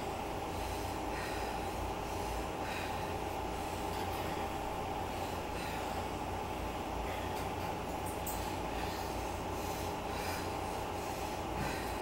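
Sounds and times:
person breathing hard: 0.4 - 7.6, 8.3 - 12.0.

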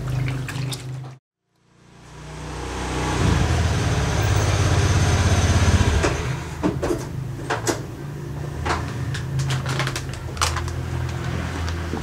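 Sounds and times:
water sloshing in plastic basin: 0.0 - 1.2.

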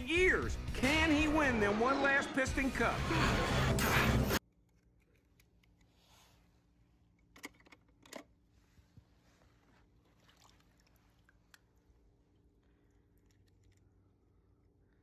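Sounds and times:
film soundtrack music: 0.0 - 4.4.

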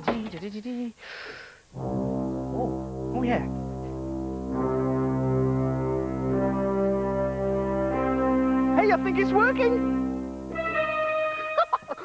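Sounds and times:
electronic keyboard chords: 1.8 - 12.0.

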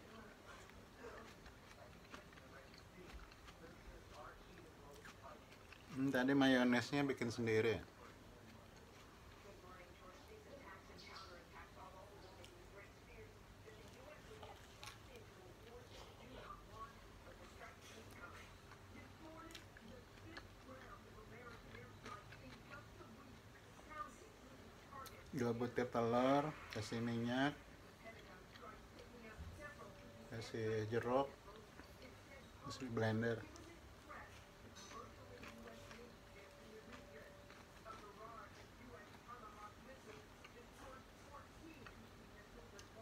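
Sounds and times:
chewing a sandwich: 0.0 - 43.0.

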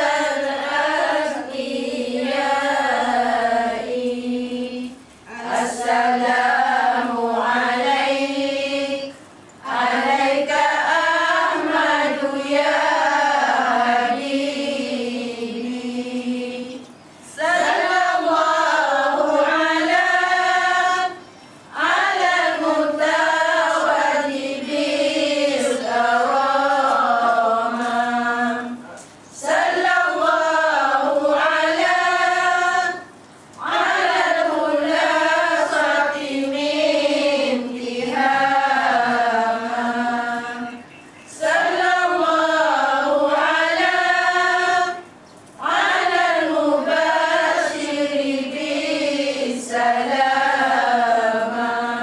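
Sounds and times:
women chanting in unison: 0.0 - 52.0.

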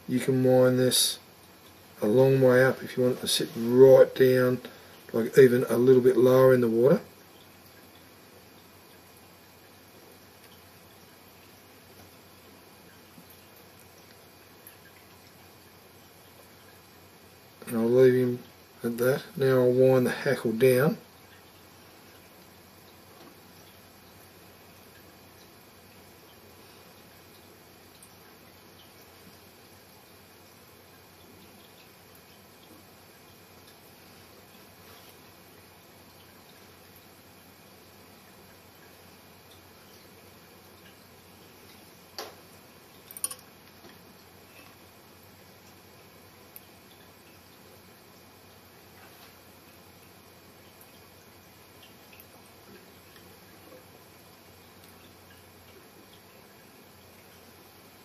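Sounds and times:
room hiss: 0.0 - 58.0.

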